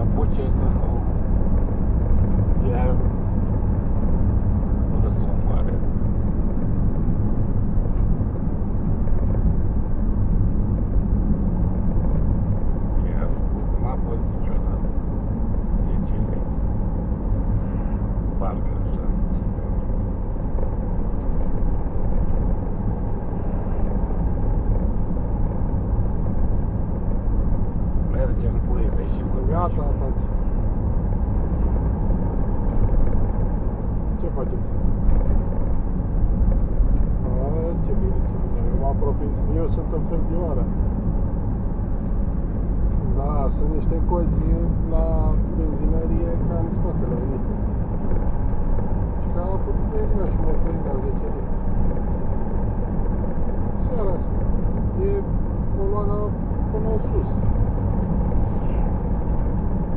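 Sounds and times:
car engine and tyres drone: 0:00.0 - 0:59.9.

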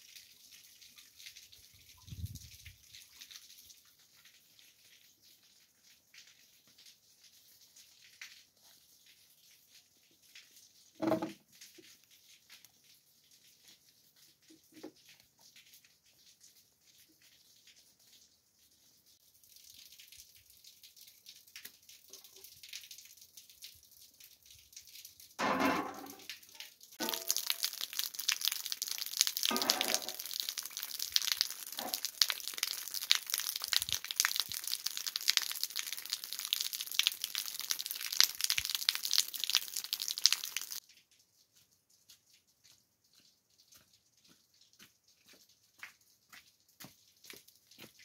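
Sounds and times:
water running in a basin: 0:00.0 - 0:48.0
water splash: 0:27.0 - 0:40.8.

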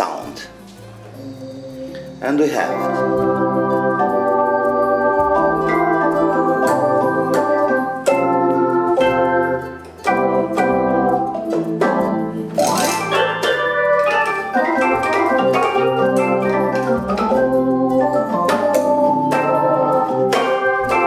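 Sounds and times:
organ chords: 0:00.0 - 0:21.0.

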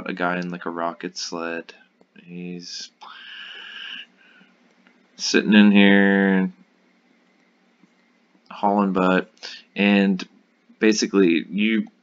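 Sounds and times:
sharp breath intake: 0:03.0 - 0:04.5.

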